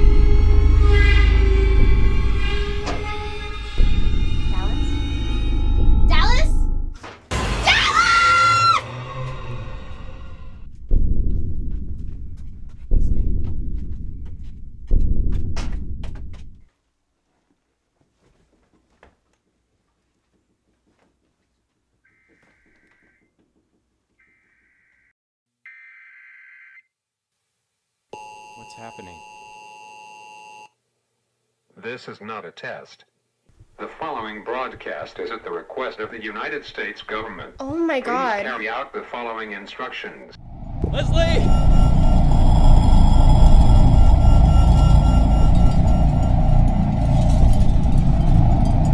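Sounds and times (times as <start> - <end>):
low rumbling horror music: 0.0 - 16.1, 40.4 - 48.9
woman screaming: 7.6 - 8.9
two-tone electronic alert tone: 40.9 - 46.9.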